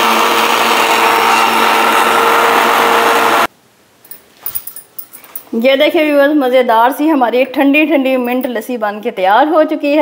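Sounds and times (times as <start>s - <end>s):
electric blender running: 0.0s - 3.5s.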